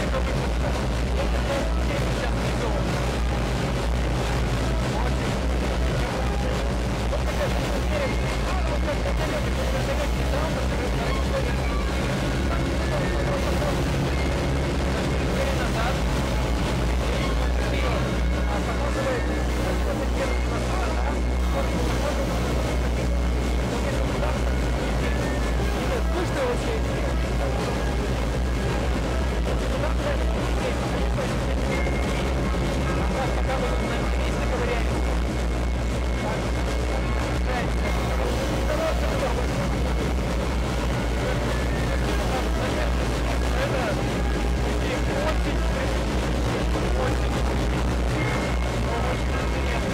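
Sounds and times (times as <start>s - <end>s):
propeller drone in cabin: 0.0s - 49.9s.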